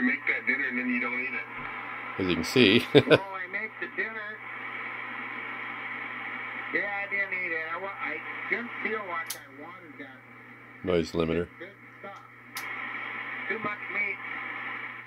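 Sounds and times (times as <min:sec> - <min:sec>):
single-sideband voice over radio: 0:00.0 - 0:04.4, 0:06.6 - 0:10.2, 0:13.2 - 0:14.4
steady band hiss: 0:01.6 - 0:03.2.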